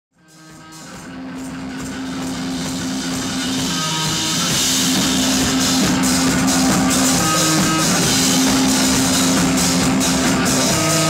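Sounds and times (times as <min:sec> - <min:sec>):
rock music with guitar and drums: 0:00.2 - 0:11.0.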